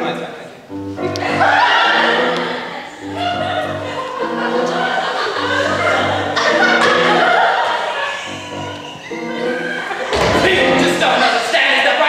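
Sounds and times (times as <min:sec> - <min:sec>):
grand piano accompaniment: 0:00.0 - 0:12.0.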